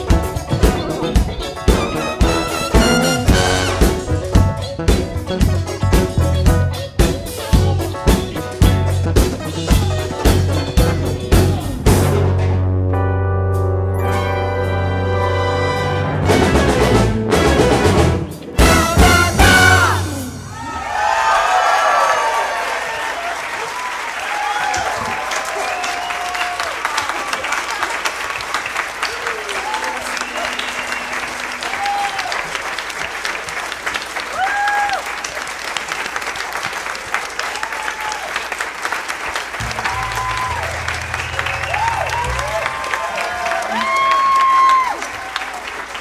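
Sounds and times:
whoops and cheers: 20.4s - 27.6s, 29.0s - 32.6s, 34.2s - 35.3s, 37.4s - 38.5s, 39.6s - 45.8s
crowd clapping: 20.6s - 46.0s
orchestra final chord: 39.6s - 42.8s.

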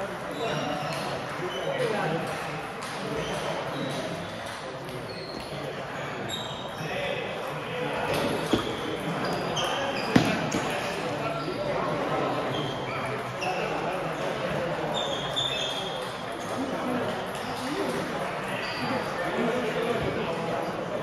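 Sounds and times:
murmur of voices in a hall: 0.0s - 21.0s.

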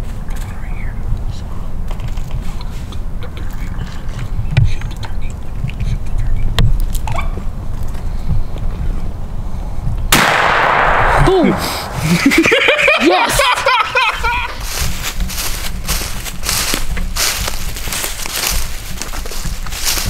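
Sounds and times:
low rumble: 7.5s - 13.5s
shotgun shot: 10.1s - 12.5s.

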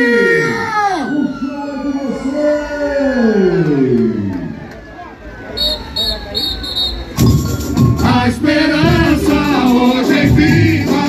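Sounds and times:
short high-pitched toots: 5.6s - 7.4s
man singing through loudspeakers: 7.8s - 11.0s.

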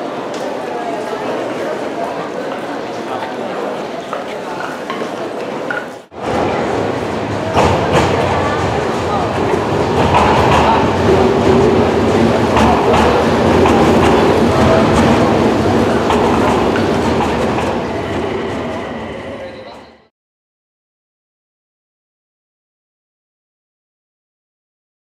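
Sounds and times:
subway train rumbling: 0.0s - 20.1s.

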